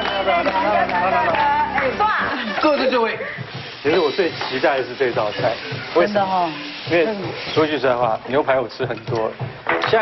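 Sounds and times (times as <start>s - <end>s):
steak sizzling in a grill pan: 2.7s - 8.5s.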